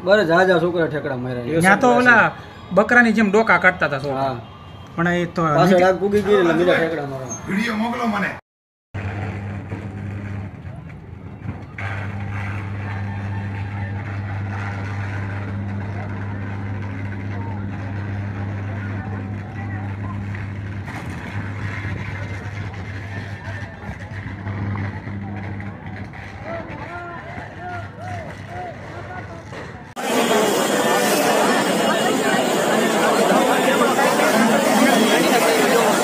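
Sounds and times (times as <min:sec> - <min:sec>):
crowd voices: 0:00.0 - 0:08.4, 0:09.0 - 0:36.0
traffic noise: 0:00.0 - 0:08.4, 0:09.0 - 0:36.0
vehicle engine humming: 0:09.0 - 0:36.0.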